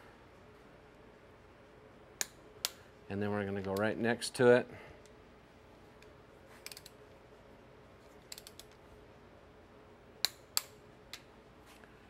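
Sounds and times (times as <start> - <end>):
wrench clicking on metal bolts: 6.6 - 7.0, 8.3 - 8.8.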